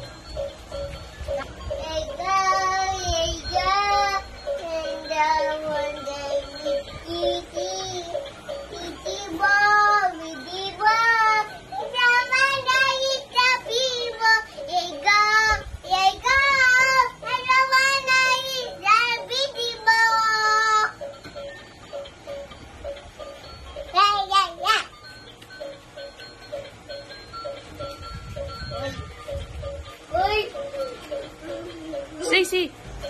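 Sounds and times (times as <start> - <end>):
music: 0.0 - 33.0
child singing: 1.8 - 21.0.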